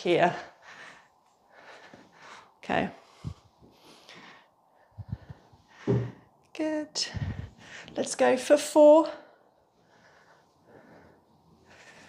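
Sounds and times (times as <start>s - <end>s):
woman breathing: 0.2s - 6.4s, 7.0s - 8.1s, 9.1s - 12.0s.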